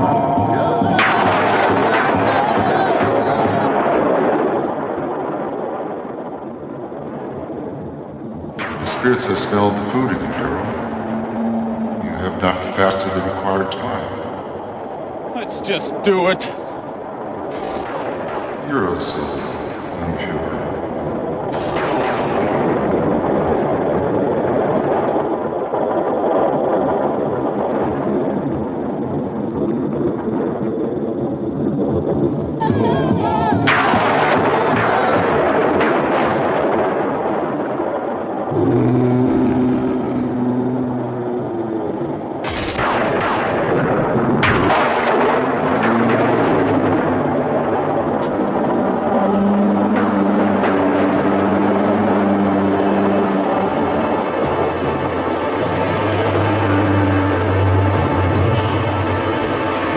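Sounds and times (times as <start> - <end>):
dramatic television score: 0.0 - 59.9
rumbling effects: 0.0 - 59.9.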